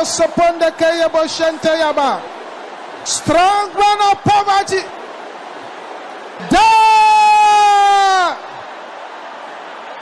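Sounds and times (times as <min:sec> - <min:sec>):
low background noise: 0:00.0 - 0:10.0
man shouting: 0:06.4 - 0:08.4.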